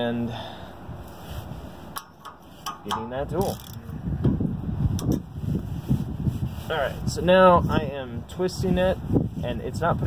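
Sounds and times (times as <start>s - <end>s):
wind on microphone: 0.8s - 10.0s
sharp metal clicks: 2.0s - 3.9s
wrench turning a bolt: 2.0s - 3.9s.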